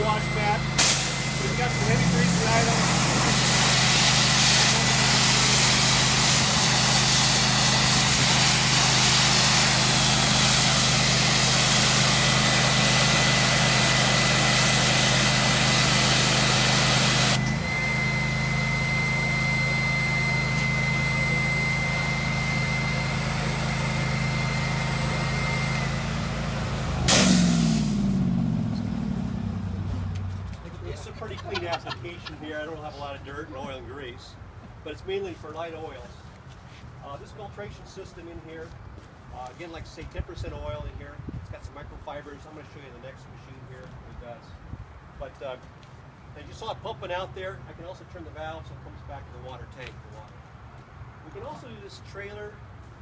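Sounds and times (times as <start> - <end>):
machine engine running: 0.0 - 30.7
thin steady whine: 0.0 - 33.7
sudden loud burst: 0.8 - 3.7, 27.0 - 30.1
pressure washer spray on mat: 0.8 - 17.4, 27.1 - 28.0.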